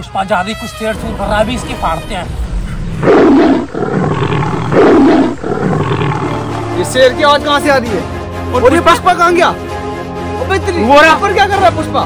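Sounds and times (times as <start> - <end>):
big cat rumbling: 1.1 - 7.2
big cat roaring: 2.3 - 7.0.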